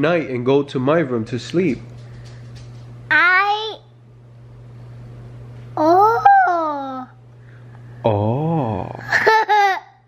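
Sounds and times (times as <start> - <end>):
toddler girl laughing: 5.8 - 7.1, 9.1 - 10.0
man saying ooh: 8.0 - 9.0.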